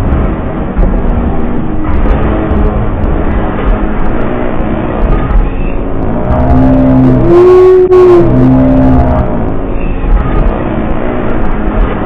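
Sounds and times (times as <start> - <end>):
horn blaring held notes: 4.2 - 11.2.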